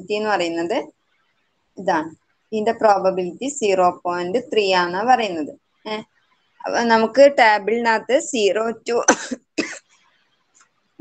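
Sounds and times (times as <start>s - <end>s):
person coughing: 9.1s - 9.8s.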